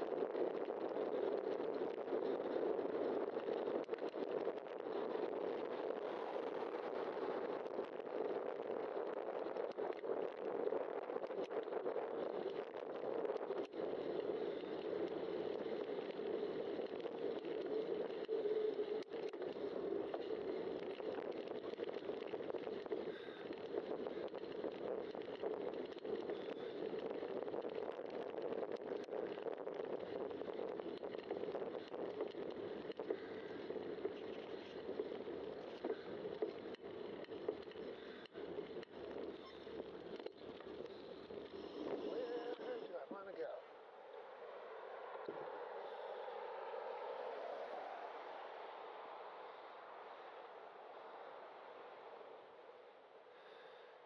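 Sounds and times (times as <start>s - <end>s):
bicycle tyre noise on road: 0.0s - 54.0s
rushing wind: 0.0s - 54.0s
faint clicks: 0.3s - 42.9s.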